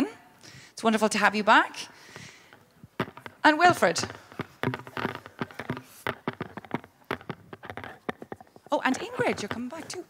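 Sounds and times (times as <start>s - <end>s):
footsteps on hollow stage floor: 2.8s - 10.0s.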